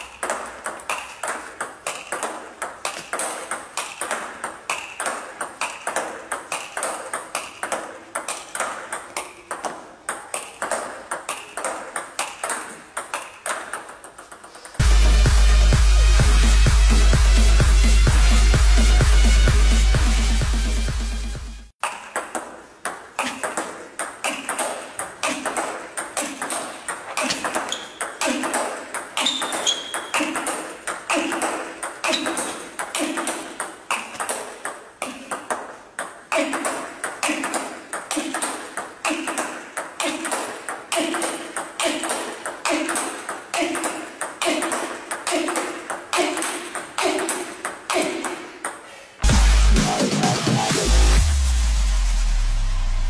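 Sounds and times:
table tennis ball clicks: 0:00.0 - 0:14.8, 0:21.8 - 0:48.8.

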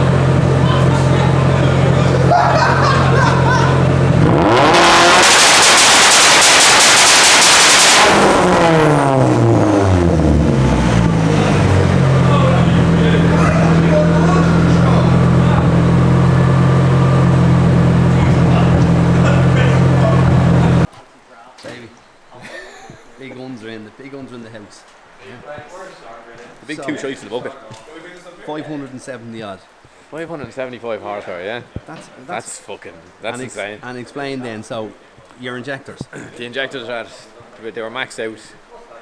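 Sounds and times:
car engine revving then idling: 0:00.0 - 0:20.9.

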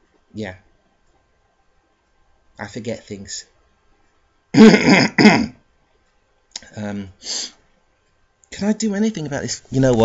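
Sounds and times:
man clearing throat: 0:04.5 - 0:05.6.

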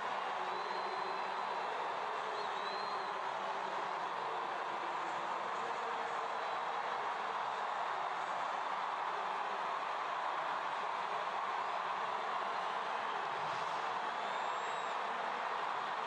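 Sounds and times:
stadium crowd murmur: 0:00.0 - 0:16.0.

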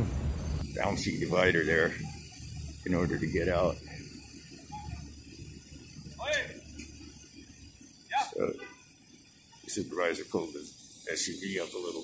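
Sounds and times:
vehicles idling and moving: 0:00.0 - 0:00.7.

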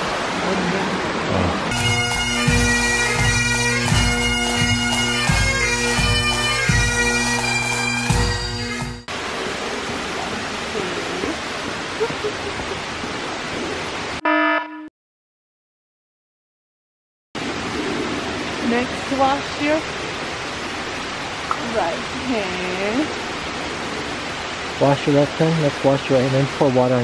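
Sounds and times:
rushing hiss of flowing water: 0:00.0 - 0:14.2, 0:17.4 - 0:27.0
bagpipe music: 0:01.7 - 0:09.1, 0:14.2 - 0:14.9
brief tone: 0:14.2 - 0:14.9.

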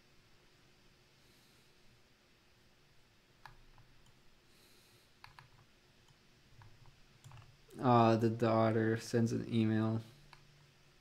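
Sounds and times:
computer mouse clicks: 0:03.4 - 0:04.2, 0:05.2 - 0:07.7, 0:10.3 - 0:10.5.

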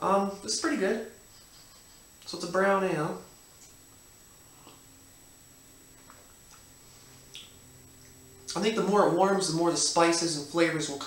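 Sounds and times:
faint steady hum: 0:00.0 - 0:11.0
mouth clicks while drinking: 0:07.3 - 0:07.6.

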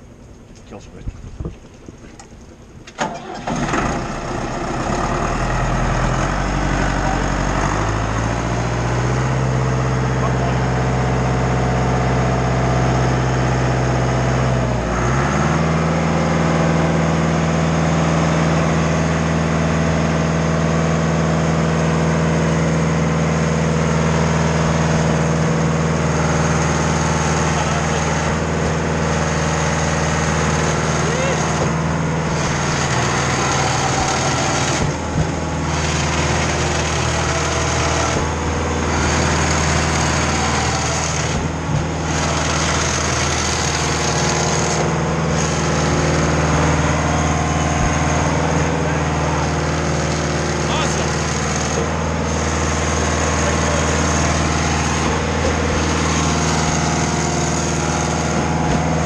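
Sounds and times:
diesel engine running: 0:00.0 - 0:59.0.

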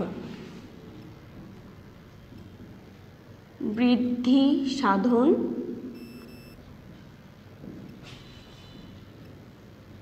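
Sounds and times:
short high electronic beep: 0:06.0 - 0:06.6.

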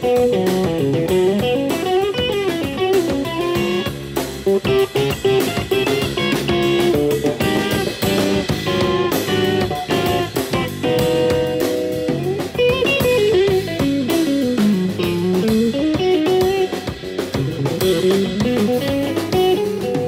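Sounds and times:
drum kit: 0:00.0 - 0:20.0
electric bass: 0:00.0 - 0:20.0
electric guitar lead: 0:00.0 - 0:20.0.

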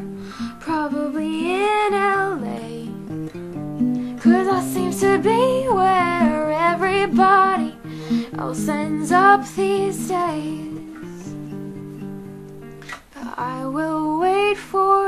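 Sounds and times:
woman singing: 0:00.0 - 0:03.2, 0:04.1 - 0:11.5, 0:13.1 - 0:15.0
strummed acoustic guitar: 0:00.0 - 0:14.4.

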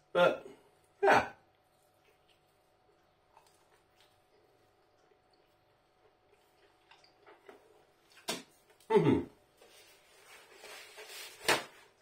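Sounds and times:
man chewing food: 0:00.7 - 0:10.6.

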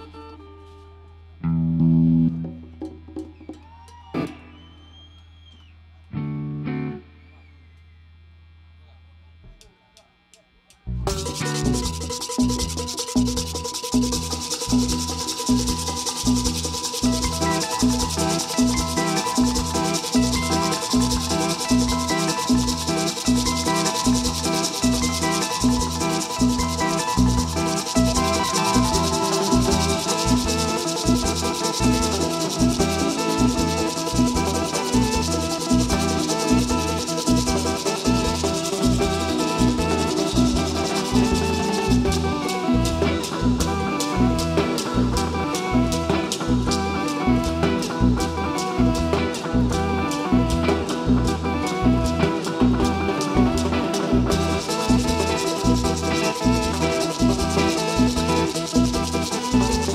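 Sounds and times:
scratchy rhythmic percussion: 0:10.8 - 0:59.9
drum kit: 0:11.0 - 0:59.9
keyboard: 0:11.0 - 0:59.9.

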